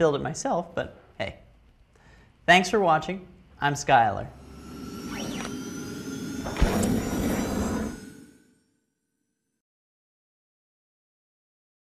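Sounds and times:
sharp synth hit: 4.3 - 8.6.

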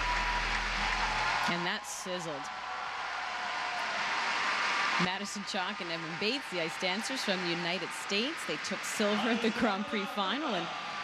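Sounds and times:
large crowd applauding: 0.0 - 11.0.

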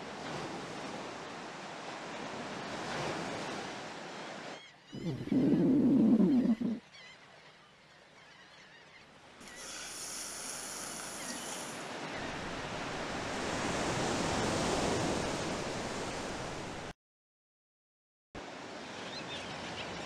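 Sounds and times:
ocean waves: 0.0 - 7.4, 8.9 - 16.9, 18.4 - 20.0.

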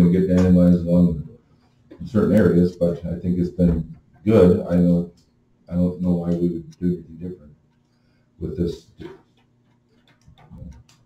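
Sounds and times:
faint clicks and taps: 8.9 - 11.0.

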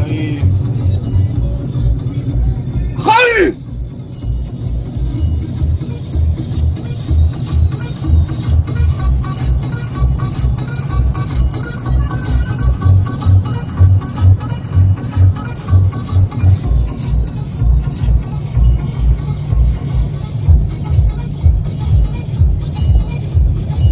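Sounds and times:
electronic dance music on car stereo: 0.0 - 23.9.

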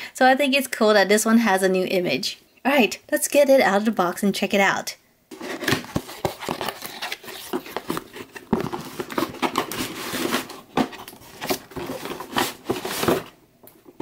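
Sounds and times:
cardboard box being opened: 5.3 - 13.4
packaging crinkling: 5.3 - 13.9.

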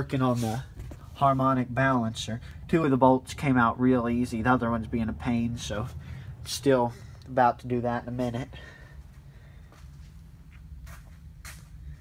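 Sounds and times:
low steady hum: 0.0 - 12.0
footsteps on concrete floor: 0.1 - 1.4, 8.6 - 12.0.

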